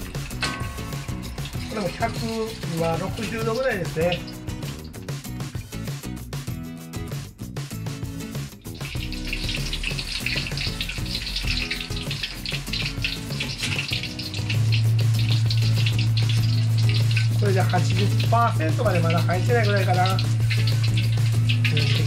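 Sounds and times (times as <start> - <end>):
cutlets deep-frying in hot oil: 0.0 - 6.0, 7.8 - 22.0
background music: 0.0 - 22.0.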